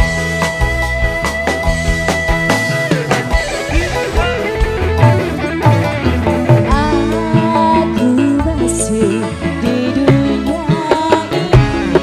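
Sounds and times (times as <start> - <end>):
steady drum beat: 0.0 - 7.8
bass: 0.0 - 12.0
sliding lead melody: 0.0 - 12.0.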